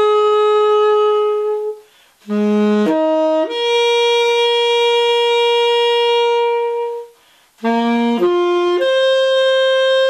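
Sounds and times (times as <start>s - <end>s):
tenor saxophone notes: 0.0s - 10.0s.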